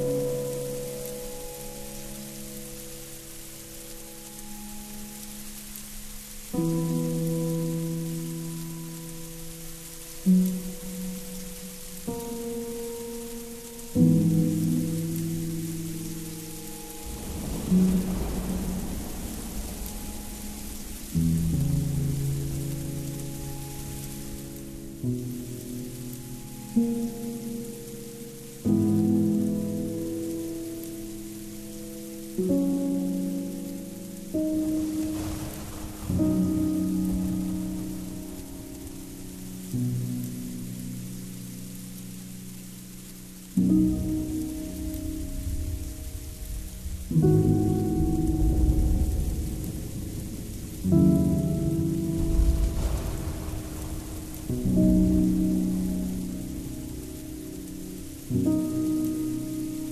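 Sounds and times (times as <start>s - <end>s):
slow ambient music chords: 0.0s - 59.9s
steady hiss: 0.0s - 59.9s.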